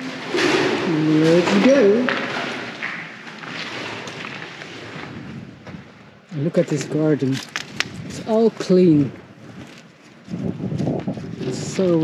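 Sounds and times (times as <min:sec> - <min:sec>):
footsteps on gritty floor: 0:00.0 - 0:12.0.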